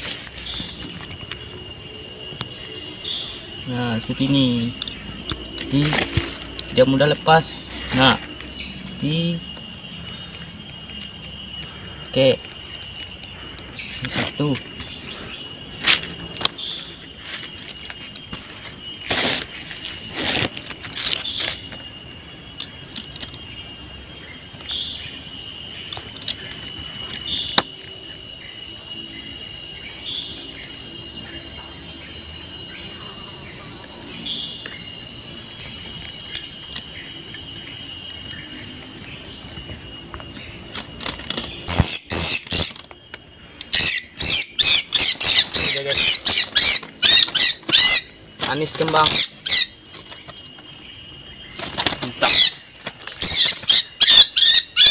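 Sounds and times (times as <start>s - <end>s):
insect chorus drone: 0.0s - 54.9s
bird distress squeals: 41.5s - 42.8s, 43.7s - 49.8s, 52.1s - 54.9s.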